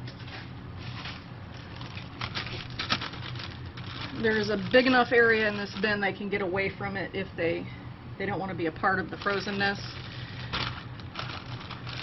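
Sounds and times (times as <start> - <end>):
plastic bag crinkling: 0.8 - 6.0, 9.0 - 12.0.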